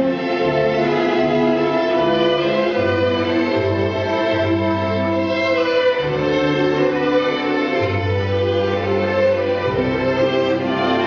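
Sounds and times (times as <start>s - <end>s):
orchestral strings with bass line: 0.0s - 11.0s.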